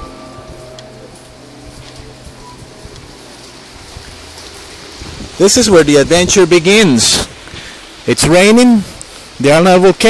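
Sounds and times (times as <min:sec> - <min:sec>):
rain falling steadily: 0:00.0 - 0:10.0.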